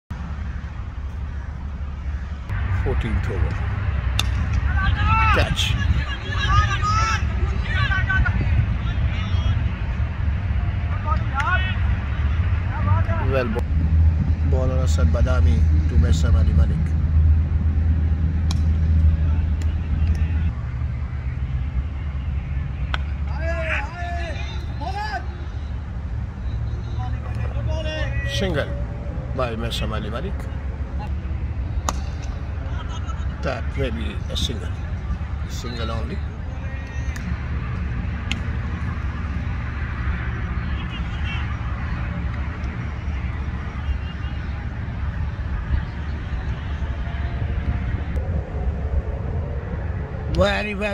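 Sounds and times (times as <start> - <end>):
low rumble: 0.1 - 22.2, 44.6 - 50.9
players shouting: 2.2 - 13.6, 21.9 - 48.2.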